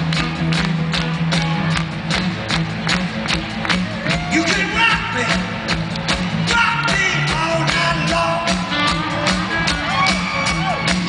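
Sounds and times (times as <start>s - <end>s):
rock band playing: 0.0s - 11.0s
steady drum beat: 0.0s - 11.0s.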